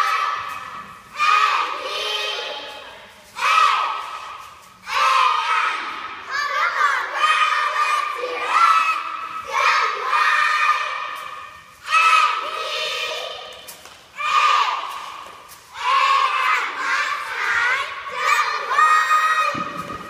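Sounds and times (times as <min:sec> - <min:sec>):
girls shouting a cheer: 0:00.0 - 0:13.6, 0:14.2 - 0:20.0.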